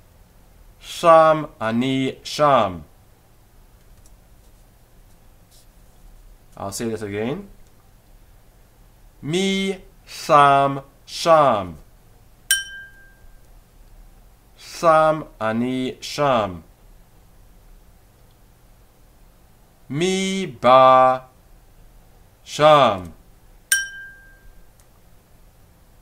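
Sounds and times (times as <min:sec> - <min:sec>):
bell ding: 0:12.5 - 0:13.4, 0:23.7 - 0:24.6.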